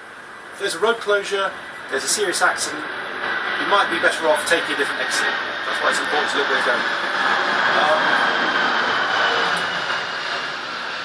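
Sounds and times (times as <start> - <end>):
bus mechanical whirr and hum: 0.0 - 3.8, 6.0 - 11.0.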